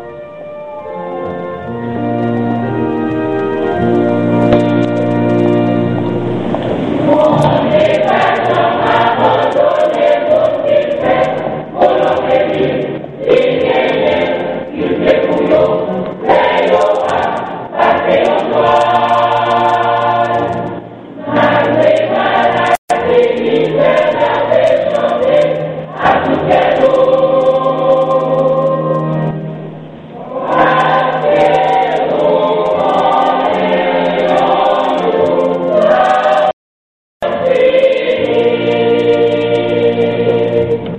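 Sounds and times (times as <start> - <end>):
low accompanying notes: 0.0 - 36.5
choir singing gospel song: 6.4 - 36.6, 37.2 - 40.9.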